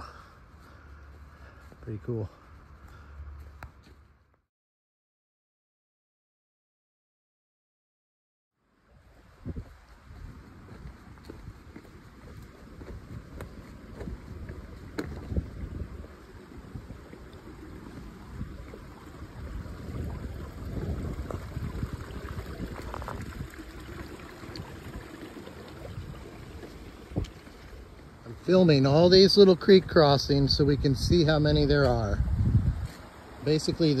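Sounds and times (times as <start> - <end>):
wind on microphone: 9.2 - 27.7, 29.8 - 33.1
running water: 9.4 - 34.0
footsteps on wet rocks: 9.5 - 23.6, 26.1 - 29.4.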